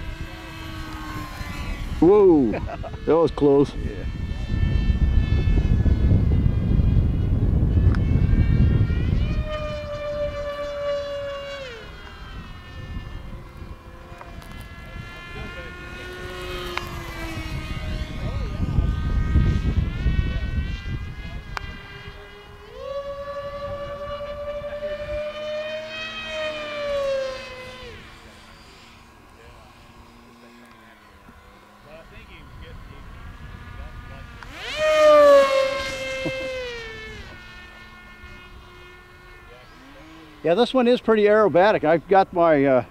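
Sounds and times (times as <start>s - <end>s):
wind rumble on microphone: 0.0s - 30.5s, 31.3s - 41.4s
model jet motor whining: 0.0s - 42.9s.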